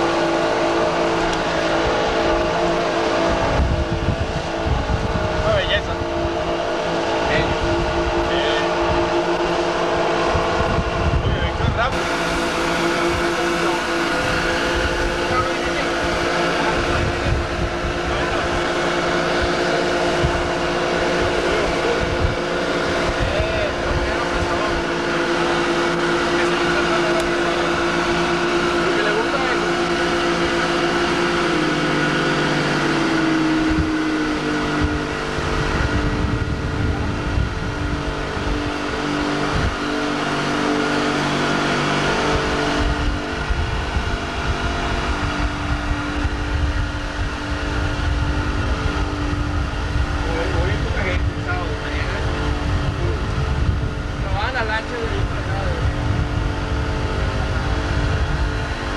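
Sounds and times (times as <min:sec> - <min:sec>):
motorboat engine running: 0:00.0 - 0:58.9
water rushing: 0:00.0 - 0:58.9
wind: 0:00.0 - 0:58.9.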